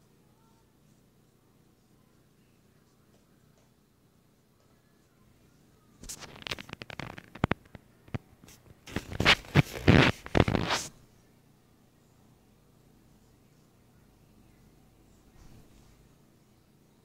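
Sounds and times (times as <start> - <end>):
rubbing and scraping handling noise: 5.4 - 11.0.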